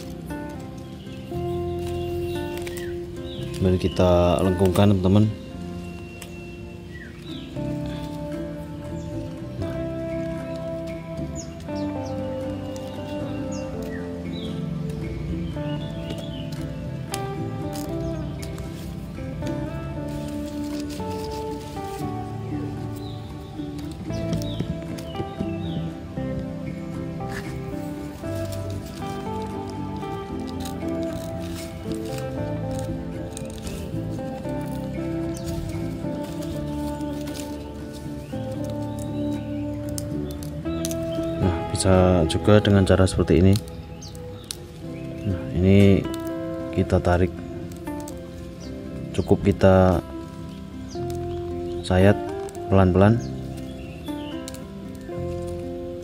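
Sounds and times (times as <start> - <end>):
instrumental music sustained notes: 0.0 - 56.0.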